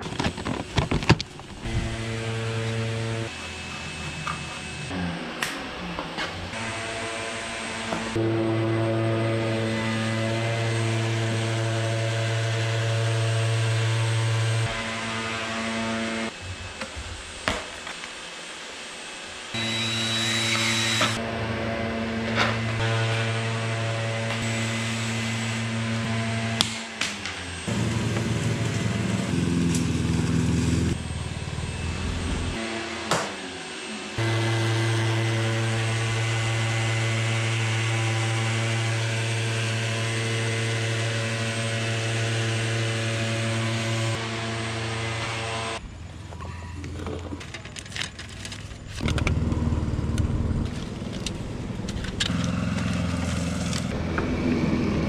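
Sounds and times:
orbital sander humming: 0:00.0 - 0:17.8, 0:18.8 - 0:45.8
shifting machine sound: 0:47.5 - 0:55.0.

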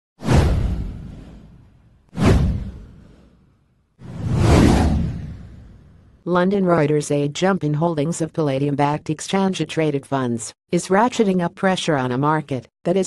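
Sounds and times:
whoosh sound effects: 0:02.2 - 0:06.0.

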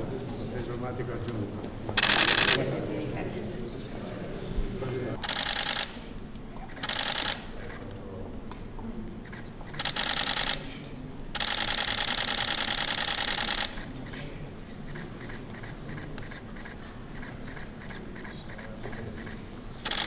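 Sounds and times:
camera shutters firing: 0:02.0 - 0:02.6, 0:05.2 - 0:06.0.

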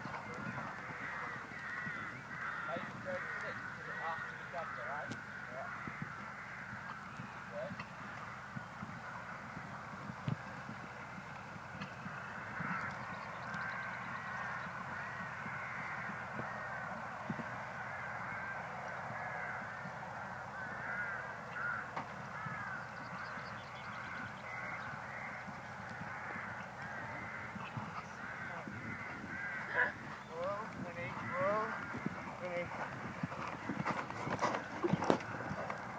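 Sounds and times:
birds calling: 0:00.0 - 0:35.9.

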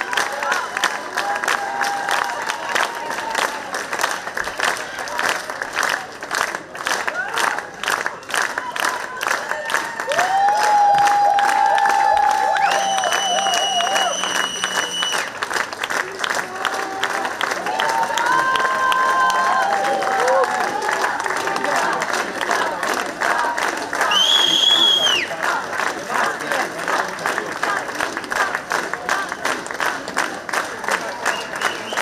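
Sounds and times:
audience applauding: 0:00.0 - 0:32.0
audience cheering: 0:08.6 - 0:15.4, 0:16.4 - 0:21.8, 0:24.0 - 0:25.3.

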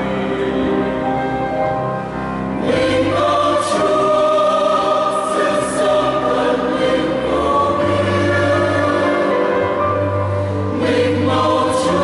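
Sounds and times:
mixed choir singing a hymn: 0:00.0 - 0:01.8, 0:02.4 - 0:12.0.

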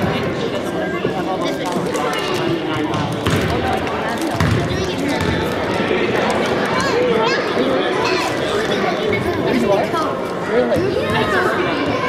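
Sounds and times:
children and adults chattering: 0:00.0 - 0:12.0
basketball bouncing on wooden floor: 0:02.8 - 0:03.6, 0:04.4 - 0:05.4.

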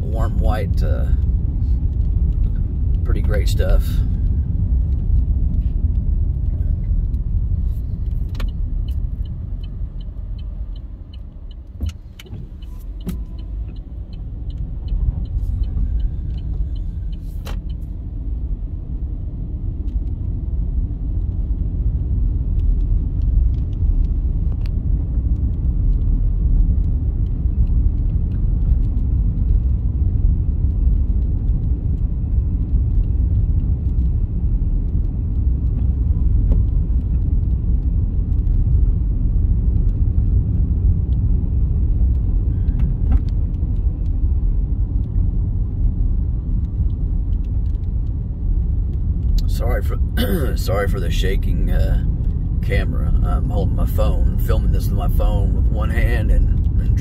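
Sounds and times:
car tyres and engine rumble: 0:00.0 - 0:57.0.

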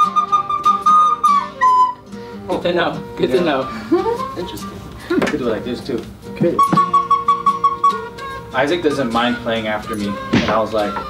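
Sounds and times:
recorder playing high note: 0:00.0 - 0:02.1, 0:06.5 - 0:11.0.

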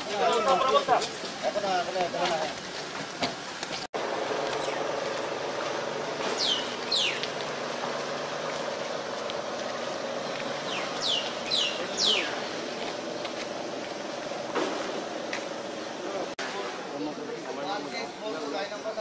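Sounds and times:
steady outdoor hum: 0:00.0 - 0:19.0
bird chirps: 0:04.6 - 0:04.9, 0:06.4 - 0:07.3, 0:10.6 - 0:12.4.

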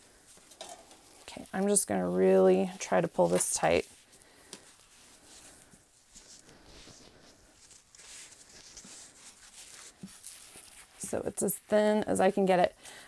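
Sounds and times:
cloth rustling and rubbing: 0:00.1 - 0:12.6.

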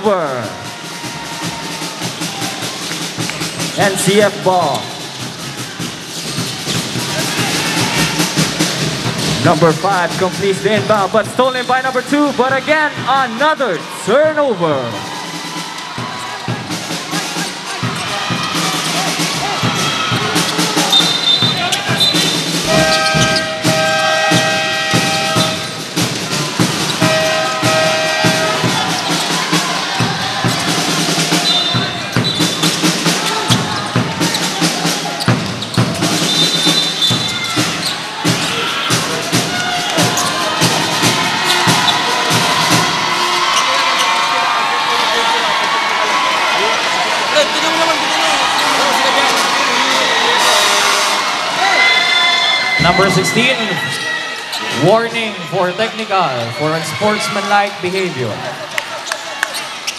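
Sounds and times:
music playing: 0:00.0 - 0:44.6, 0:45.6 - 0:58.7
crowd noise: 0:00.0 - 0:59.9.

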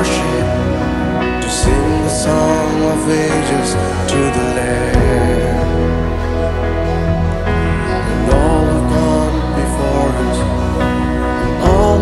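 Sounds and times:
acoustic guitar: 0:00.0 - 0:12.0
bass: 0:00.0 - 0:12.0
keyboard: 0:00.0 - 0:12.0.

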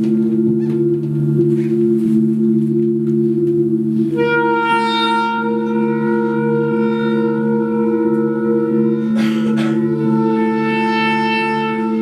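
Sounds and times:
sustained ensemble drone: 0:00.0 - 0:12.0.

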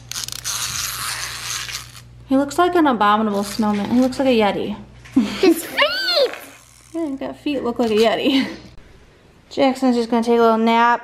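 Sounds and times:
clockwork motor buzzing: 0:05.6 - 0:07.2.

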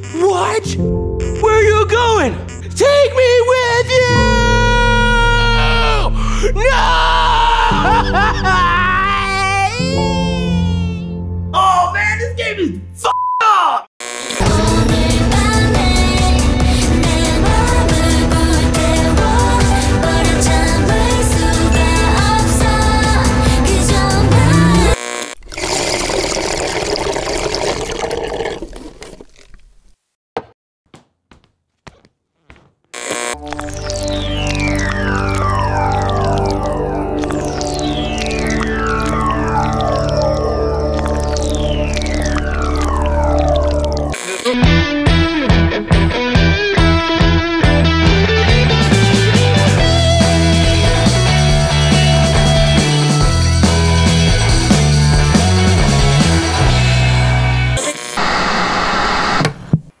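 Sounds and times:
television static hiss: 0:58.2 - 0:59.6
buzzing electronic burst: 0:58.2 - 0:59.8.

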